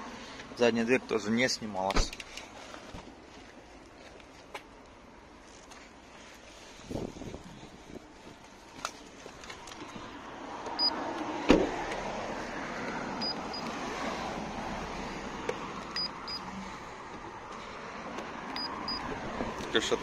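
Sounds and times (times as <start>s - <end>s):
car door shutting: 11.4s - 12.0s.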